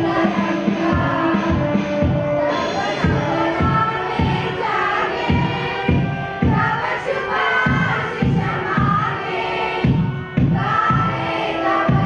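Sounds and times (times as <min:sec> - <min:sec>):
steady drum beat: 0:00.0 - 0:09.2, 0:09.8 - 0:12.0
many voices singing with music: 0:00.0 - 0:12.0.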